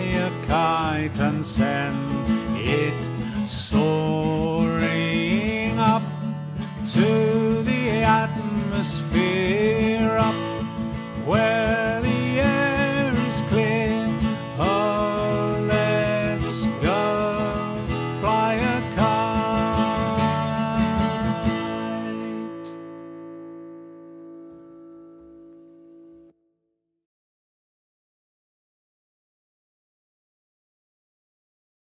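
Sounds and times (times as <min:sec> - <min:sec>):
acoustic guitar strumming: 0:00.0 - 0:26.4.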